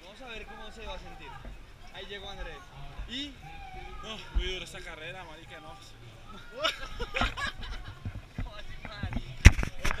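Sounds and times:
people talking indistinctly: 0:00.0 - 0:10.0.

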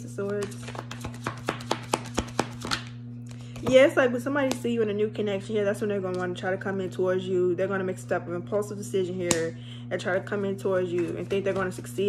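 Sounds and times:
cards being shuffled: 0:00.3 - 0:03.7.

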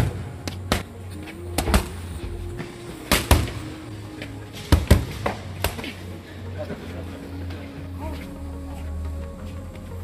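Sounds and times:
background music: 0:00.0 - 0:10.0
boxing gloves hitting mitts: 0:01.5 - 0:02.0, 0:03.1 - 0:03.7, 0:04.6 - 0:06.0.

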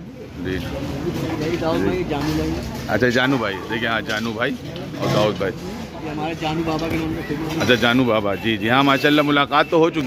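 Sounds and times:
men talking: 0:00.3 - 0:10.0.

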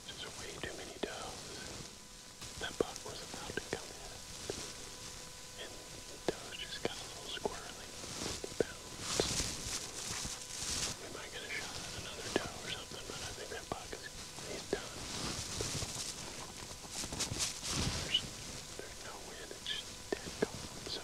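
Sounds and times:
man whispering: 0:00.0 - 0:01.9, 0:02.5 - 0:05.0, 0:05.6 - 0:16.8, 0:17.7 - 0:21.0.

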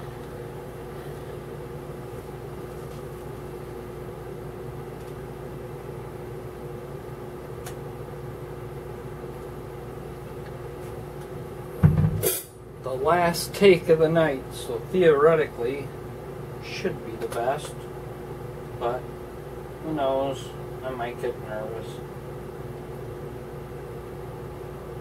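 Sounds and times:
sharp knock: 0:11.8 - 0:12.5.

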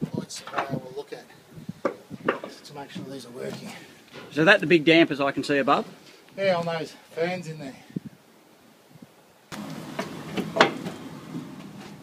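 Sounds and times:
knocks and clanks: 0:09.6 - 0:12.0.

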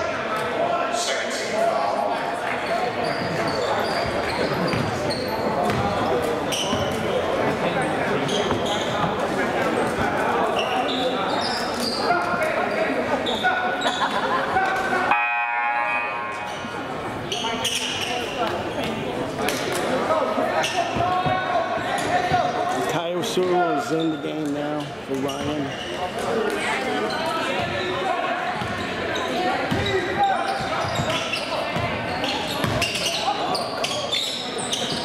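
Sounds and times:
voices of players and spectators: 0:00.0 - 0:35.0
sneakers squeaking on hardwood: 0:02.6 - 0:07.2, 0:08.0 - 0:09.2, 0:10.5 - 0:14.1, 0:24.8 - 0:26.1, 0:26.9 - 0:35.0
basketball bouncing: 0:05.6 - 0:05.9, 0:29.7 - 0:29.9, 0:32.6 - 0:32.9.

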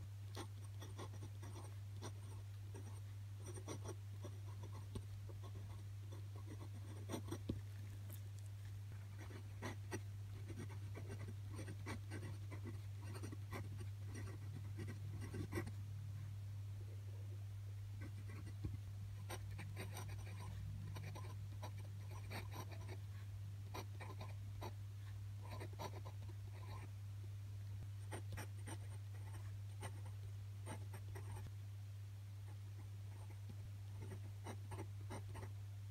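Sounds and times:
steady low hum: 0:00.0 - 0:35.9
glass pen nib scratching paper: 0:09.2 - 0:15.7.

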